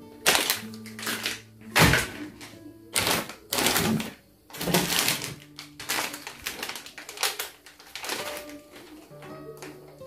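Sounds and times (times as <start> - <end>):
packaged products rustling: 0.0 - 10.0.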